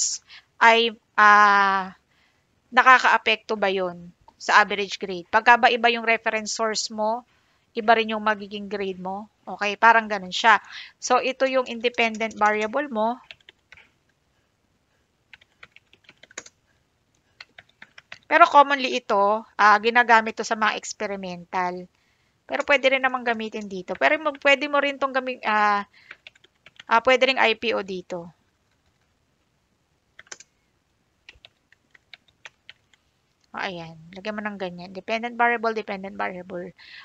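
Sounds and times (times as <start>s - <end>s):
keyboard typing: 11.6s - 14.2s, 15.3s - 18.4s, 22.5s - 24.3s, 26.0s - 27.0s, 28.6s - 29.1s, 30.1s - 30.6s, 31.2s - 33.0s.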